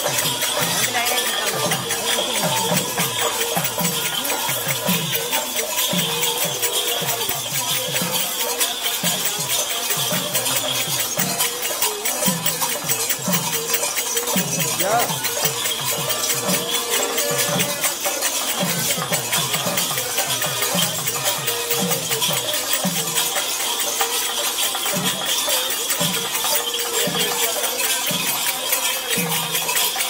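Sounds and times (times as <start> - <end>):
metal bells and rattles jingling: 0.0 - 30.0.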